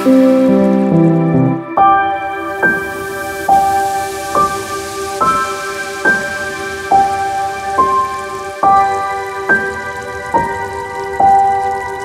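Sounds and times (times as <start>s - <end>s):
soft piano notes: 0.0s - 12.0s
steady hiss: 0.0s - 12.0s.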